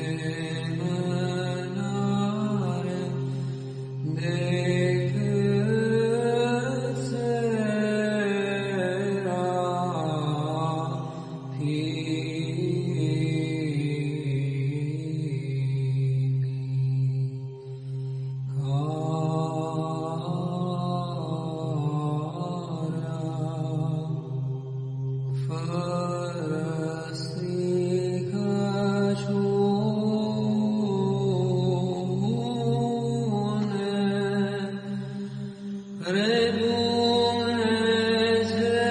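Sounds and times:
held vocal drone: 0.0s - 38.9s
melismatic chant singing: 0.0s - 38.9s.

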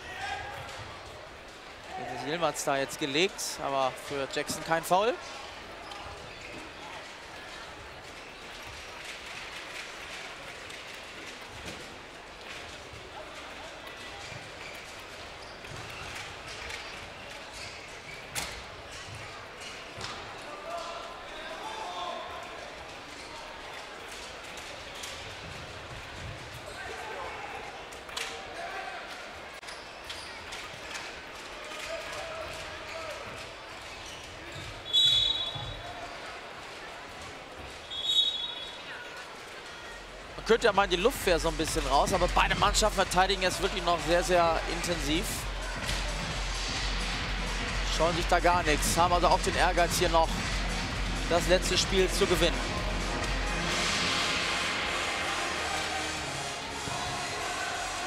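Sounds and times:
crowd chatter and shouts: 0.0s - 58.0s.

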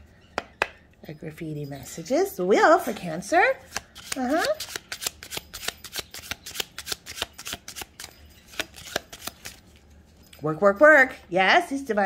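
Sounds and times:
cards being shuffled: 3.7s - 9.8s.

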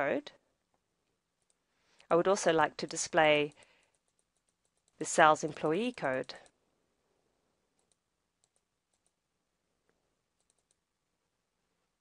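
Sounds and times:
computer mouse clicks: 3.5s - 5.0s, 7.8s - 9.2s, 10.4s - 10.8s.

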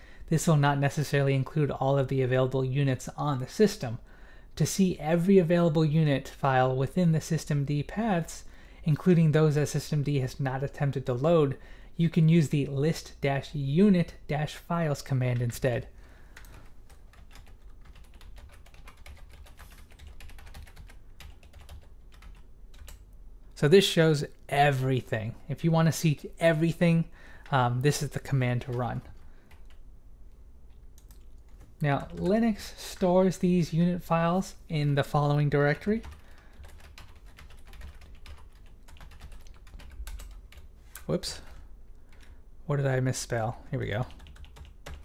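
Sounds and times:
typing on computer keyboard: 16.4s - 23.0s, 36.0s - 40.7s, 44.1s - 45.0s.

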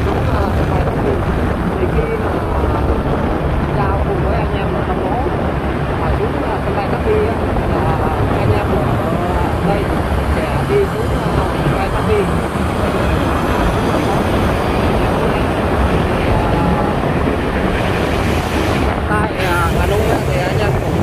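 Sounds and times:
road noise in tunnel: 0.0s - 21.0s
wind noise: 0.0s - 21.0s.

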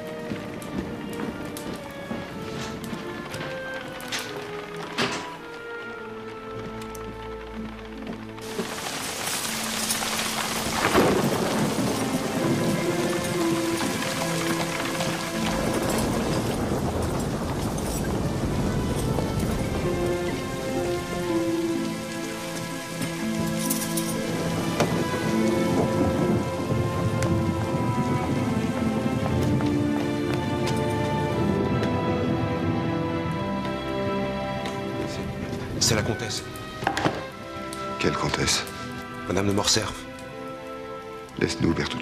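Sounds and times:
heavy rain: 0.0s - 42.0s
music of long held notes: 0.0s - 42.0s
loud thunderclap: 10.4s - 21.2s.

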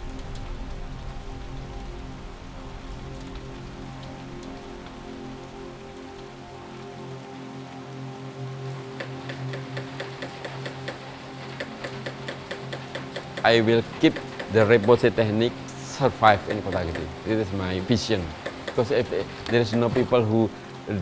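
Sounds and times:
background music with sustained tones: 0.0s - 21.0s
small hammer tapping metal punch: 9.0s - 11.0s, 11.6s - 13.5s, 14.1s - 15.0s, 16.4s - 17.1s, 18.4s - 20.0s.

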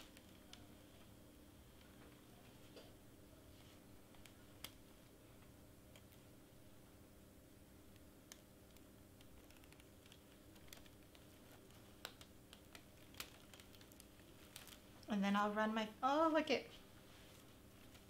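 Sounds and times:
faint steady hum: 0.0s - 18.0s
fingernail clicks on vinyl sheet: 7.9s - 14.7s.

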